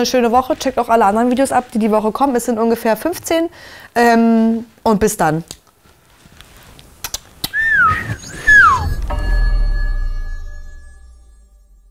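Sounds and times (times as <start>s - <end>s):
whistle-like tones: 7.5s - 11.4s
synth chord with deep bass: 8.6s - 11.9s.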